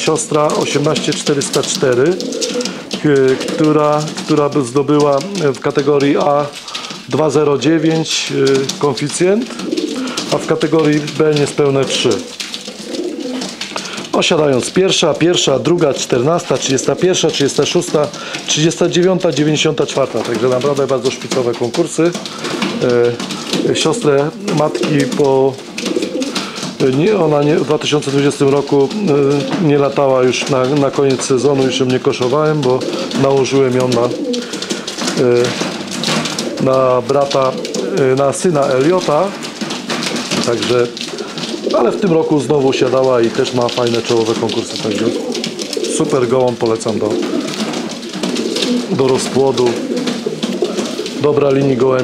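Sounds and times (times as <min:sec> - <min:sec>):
man's voiced hesitation: 0:00.0 - 0:12.3, 0:13.8 - 0:25.6, 0:26.8 - 0:34.5, 0:36.6 - 0:39.4, 0:41.7 - 0:45.2, 0:45.8 - 0:47.4, 0:48.8 - 0:49.9
person speaking: 0:00.0 - 0:12.4, 0:13.0 - 0:35.8, 0:36.4 - 0:39.4, 0:40.2 - 0:47.6, 0:48.6 - 0:52.0
pigeons cooing softly: 0:00.0 - 0:52.0.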